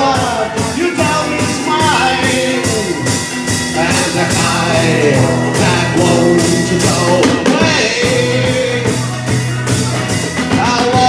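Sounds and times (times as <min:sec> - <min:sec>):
person singing: 0:00.0 - 0:09.2
acoustic guitar: 0:00.0 - 0:11.0
drum kit with cymbals: 0:00.0 - 0:11.0
second guitar: 0:00.0 - 0:11.0.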